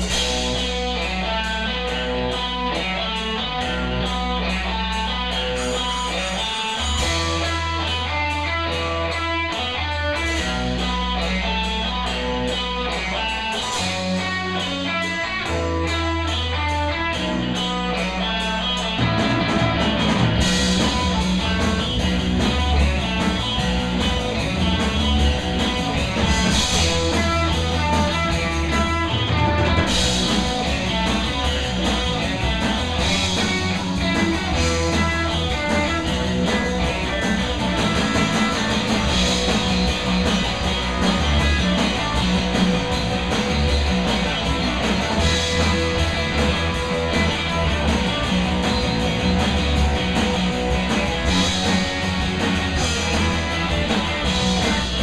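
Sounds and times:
rock band playing: 0.0s - 55.0s.

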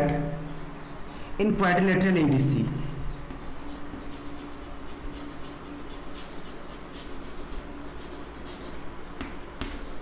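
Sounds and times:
steady low hum: 0.0s - 10.0s
chalk scratching on chalkboard: 3.3s - 8.9s.

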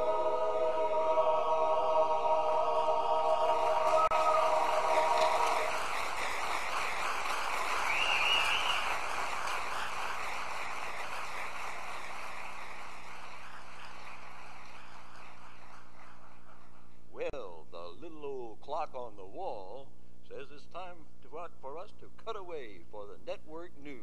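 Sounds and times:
men's chorus singing: 0.0s - 5.9s
audience applause: 3.1s - 16.9s
whistle from audience: 4.0s - 5.8s, 7.7s - 10.2s.

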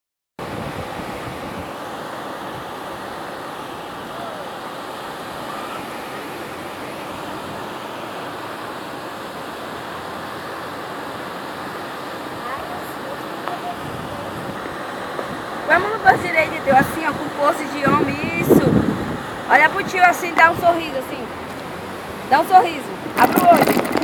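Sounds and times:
wind on microphone: 0.4s - 1.8s, 13.5s - 21.0s, 21.8s - 24.0s
surf breaking on beach: 0.4s - 24.0s.

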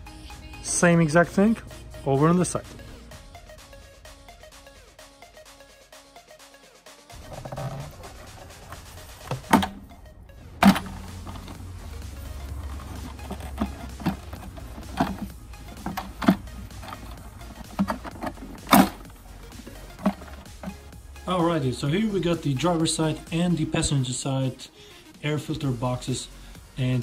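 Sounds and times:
background music: 0.0s - 27.0s
plastic parts clicking and knocking: 7.2s - 9.8s, 10.6s - 11.8s, 12.5s - 20.9s.

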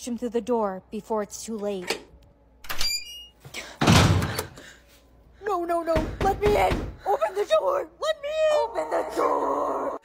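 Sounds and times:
door shutting with thud: 3.8s - 4.5s.

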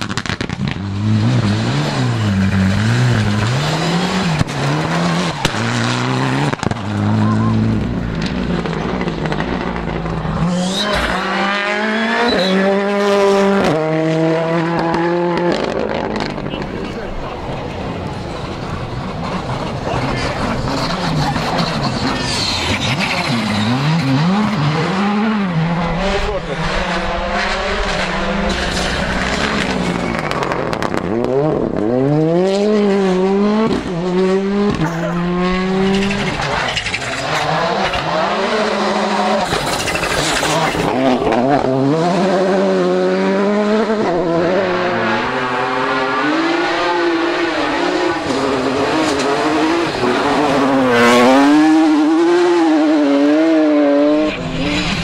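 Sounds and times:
rally car engines at full throttle: 0.0s - 55.0s.

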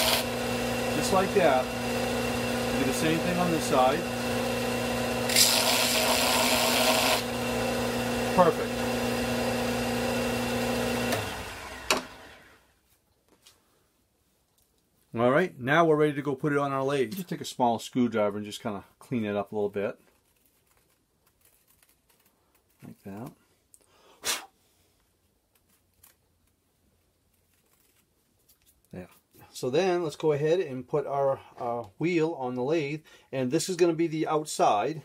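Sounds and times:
belt sander coasting down: 0.0s - 12.6s.

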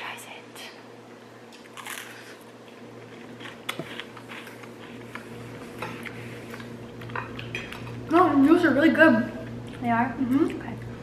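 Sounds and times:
steady low hum: 0.0s - 11.0s
person chewing garlic bread: 1.5s - 8.1s.

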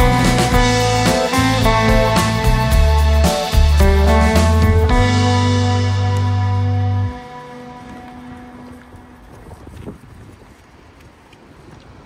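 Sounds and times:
background music: 0.0s - 9.2s
faint street ambience: 0.0s - 12.0s
wind buffeting microphone: 7.8s - 12.0s.

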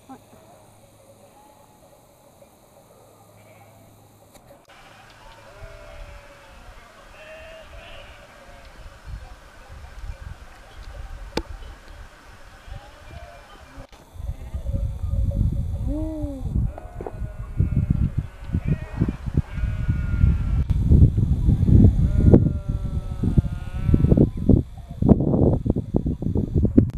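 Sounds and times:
sheep bleating: 4.7s - 8.7s, 16.7s - 20.6s, 22.0s - 24.2s
wind rumble on microphone: 7.4s - 26.9s.

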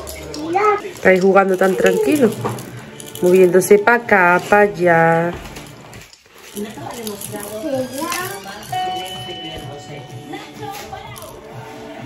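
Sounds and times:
electronic toy piano music: 7.7s - 10.4s.

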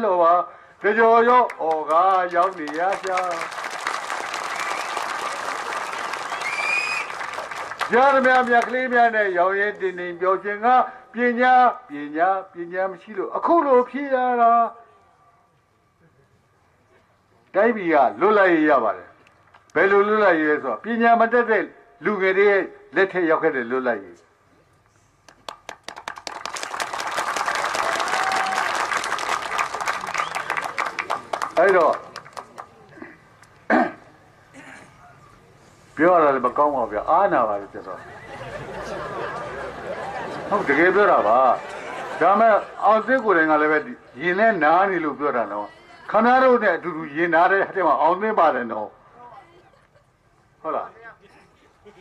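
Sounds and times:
audience applauding: 1.5s - 8.9s, 25.3s - 32.8s.

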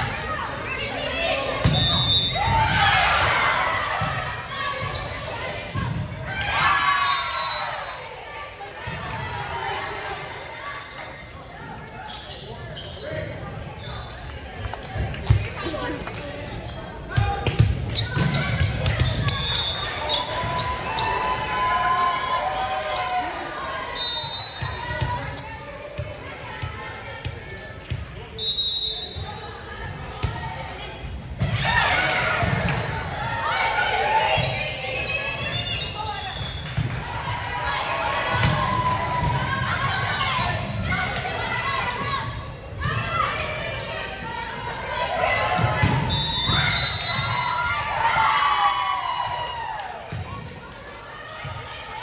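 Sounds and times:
players and spectators calling: 0.0s - 52.0s
volleyball bouncing on gym floor: 17.1s - 19.8s, 38.4s - 39.6s.

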